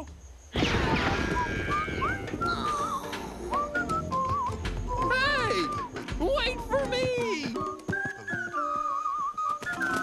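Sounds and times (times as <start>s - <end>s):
whistle-like glides: 0.6s - 6.0s, 8.0s - 10.0s
music: 1.0s - 10.0s
rumble of many hooves: 2.2s - 10.0s.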